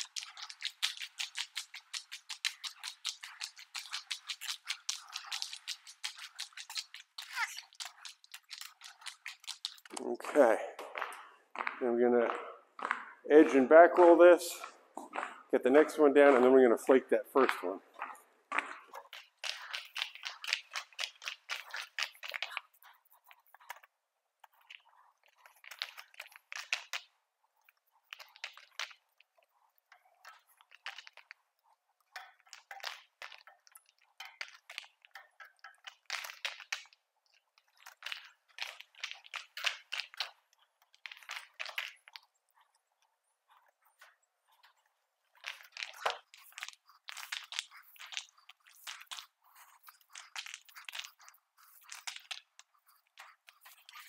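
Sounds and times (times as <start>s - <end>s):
paint roller crackling: 0.0s - 23.9s, 43.5s - 54.0s.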